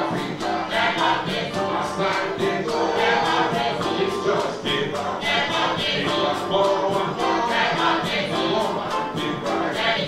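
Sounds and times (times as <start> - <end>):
steady percussion beat: 0.0 - 10.0
voices singing a chorus: 0.0 - 10.0.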